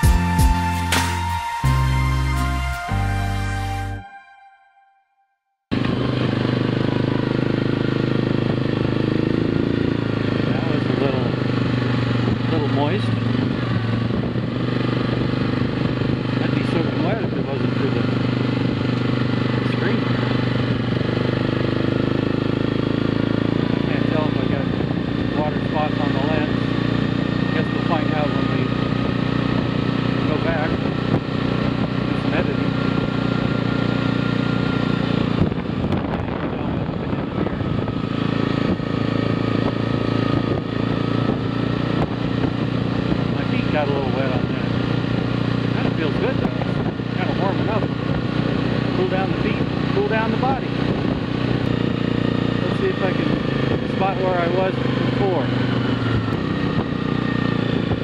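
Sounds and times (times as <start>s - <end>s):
atv engine running: 0.0s - 2.1s, 5.7s - 58.0s.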